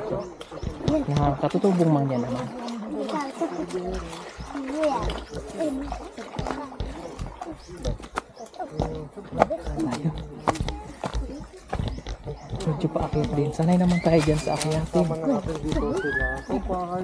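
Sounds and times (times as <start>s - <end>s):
people talking: 0.0s - 17.0s.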